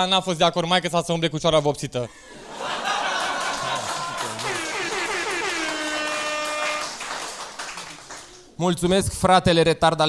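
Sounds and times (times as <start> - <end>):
brassy musical sting: 4.4 - 7.0.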